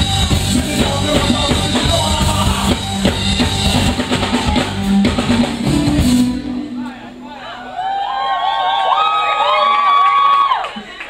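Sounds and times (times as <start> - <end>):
concert audience cheering: 0.0 - 5.4, 6.8 - 11.0
high whoops and calls: 7.4 - 10.8.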